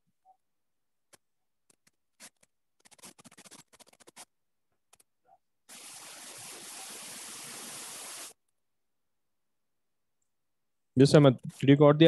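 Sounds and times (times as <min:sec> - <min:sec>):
small sharp clicks and scratches: 0:01.1 - 0:05.1.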